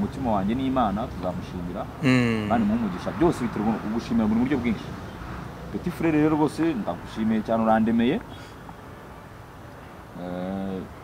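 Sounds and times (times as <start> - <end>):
low background noise: 0.0 - 11.0
man speaking: 2.0 - 3.0.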